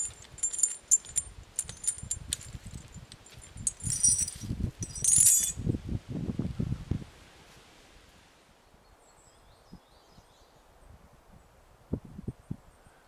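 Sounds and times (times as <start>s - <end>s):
chain clinking against tree: 0.0s - 5.6s.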